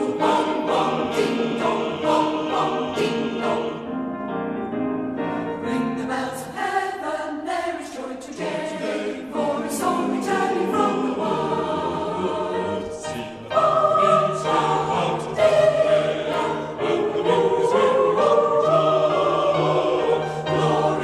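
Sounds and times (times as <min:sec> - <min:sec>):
choir singing a hymn: 0:00.0 - 0:04.3, 0:05.2 - 0:21.0.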